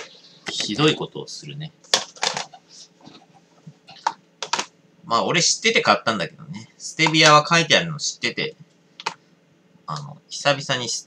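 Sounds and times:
board clicking and tapping on desk: 0:04.0 - 0:04.7.

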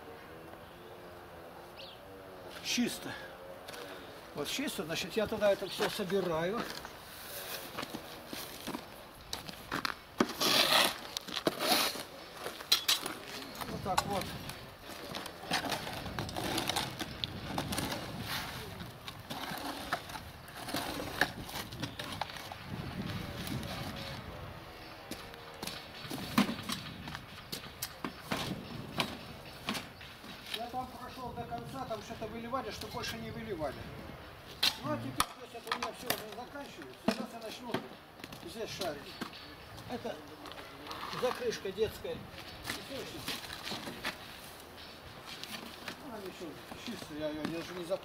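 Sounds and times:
rake and shovel scraping ground: 0:05.4 - 0:24.2.

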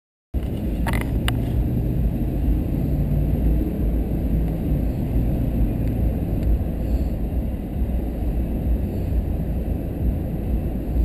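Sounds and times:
car engine and road rumble: 0:00.3 - 0:11.0.

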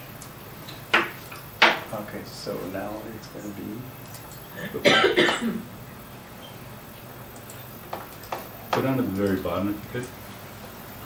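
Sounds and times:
person coughing: 0:04.6 - 0:05.7.

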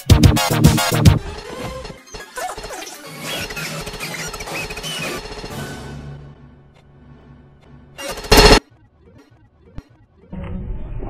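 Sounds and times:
animated film music: 0:00.0 - 0:11.0
clattering crashing sound effects: 0:01.0 - 0:06.0, 0:08.0 - 0:08.6.

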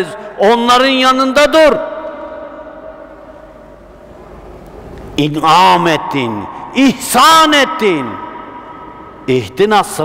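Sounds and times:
man's amplified voice echo: 0:00.0 - 0:03.9, 0:05.1 - 0:10.0.

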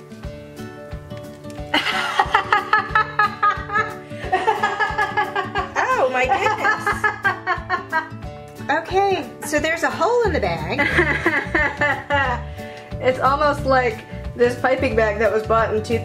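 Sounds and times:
background music with steady beat: 0:00.0 - 0:16.0
people laughing: 0:01.7 - 0:08.2, 0:10.7 - 0:12.5.

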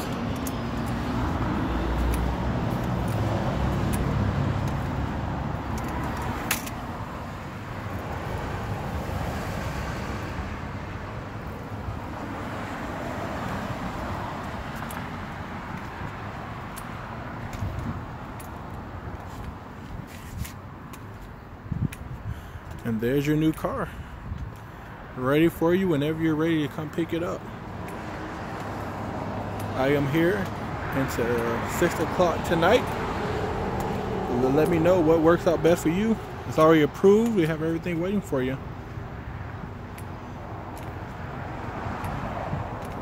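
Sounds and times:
low hum of road traffic: 0:00.0 - 0:43.0.

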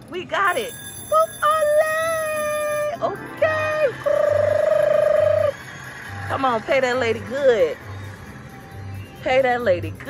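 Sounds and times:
slot machine blip: 0:00.4 - 0:05.5.

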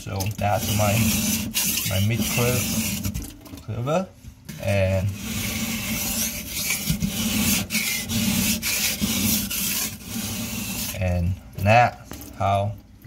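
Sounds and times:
knife rasping on sharpening stone: 0:00.6 - 0:03.0, 0:05.2 - 0:11.0.

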